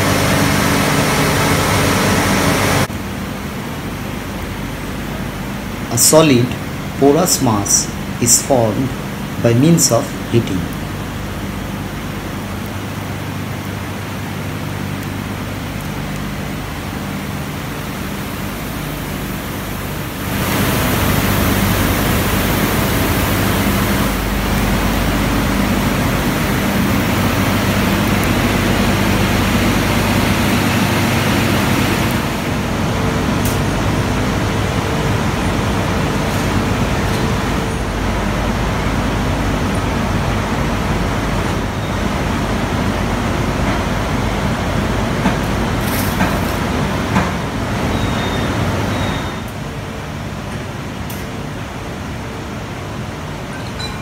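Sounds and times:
low even hum: 0.0s - 46.6s.

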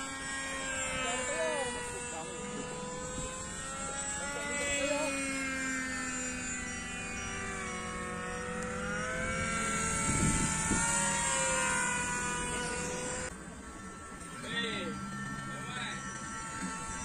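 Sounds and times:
electric motor and propeller whining: 0.0s - 17.0s.

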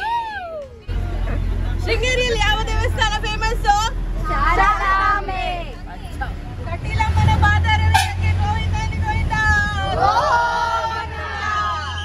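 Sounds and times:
bus engine rumbling: 0.0s - 12.0s
women cheering and chattering: 0.0s - 12.0s.

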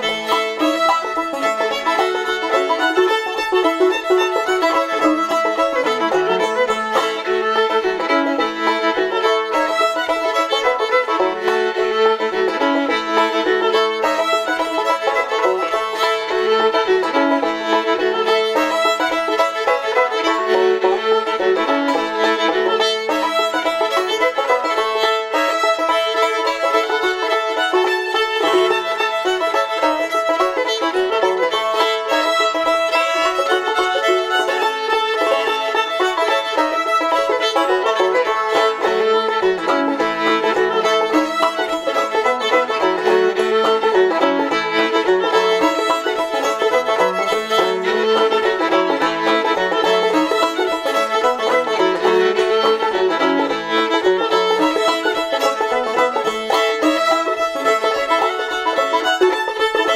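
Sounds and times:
bowed fiddle melody: 0.0s - 59.9s
plucked banjo: 0.0s - 59.9s.

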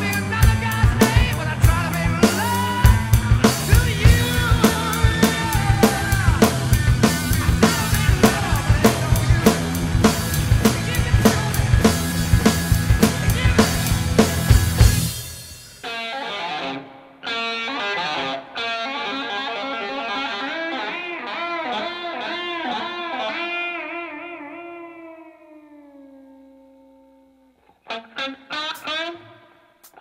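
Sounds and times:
distorted electric guitar solo: 0.0s - 15.1s, 15.8s - 30.0s
rock band with drums: 0.0s - 25.4s, 27.9s - 30.0s.

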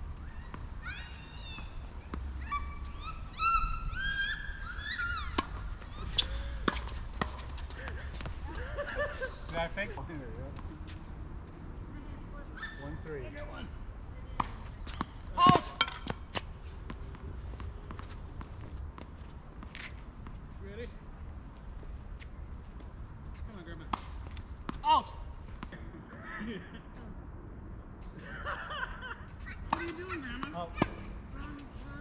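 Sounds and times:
tennis ball hits: 14.4s - 17.1s, 29.7s - 31.1s.

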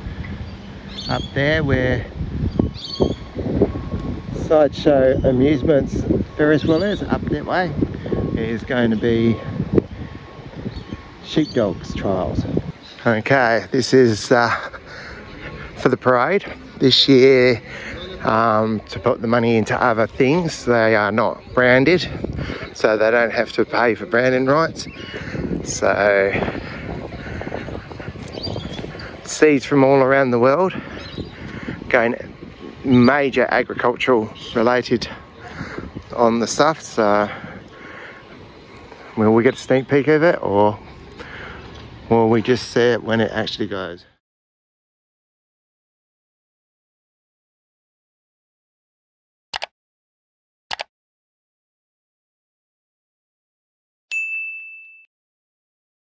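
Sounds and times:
bell ding: 54.1s - 55.1s.

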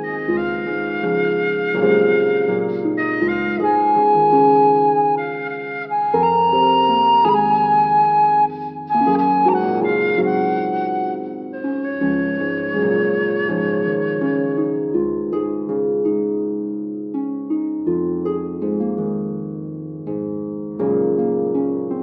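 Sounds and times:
bamboo flute melody: 0.0s - 15.4s
instrumental backing track with bass: 0.0s - 22.0s.

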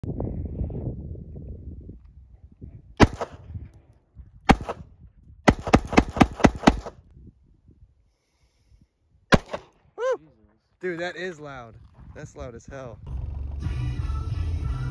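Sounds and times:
pistol shots: 3.0s - 3.4s, 4.5s - 4.9s, 5.5s - 7.0s, 9.3s - 9.8s.

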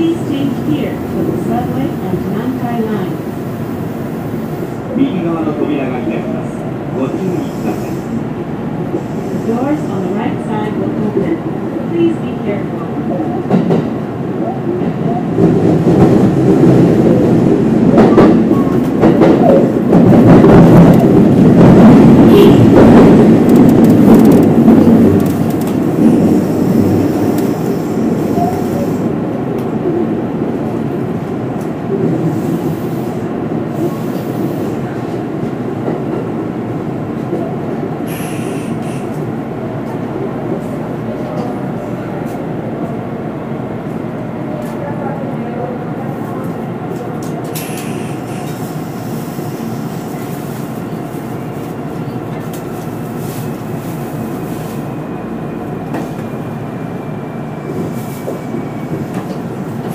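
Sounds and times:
electric train running in tunnel: 0.0s - 59.9s.

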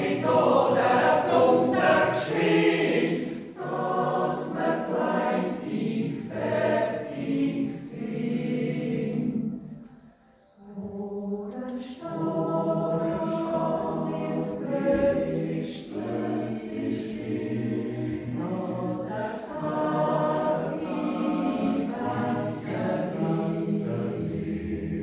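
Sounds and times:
mixed choir yodeling in harmony: 0.0s - 9.8s, 10.6s - 25.0s.

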